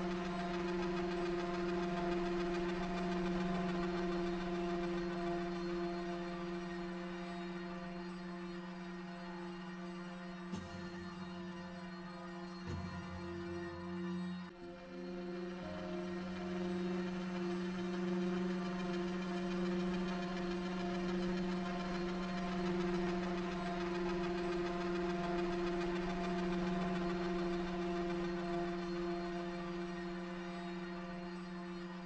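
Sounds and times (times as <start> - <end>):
ambient drone music: 0.0 - 32.0.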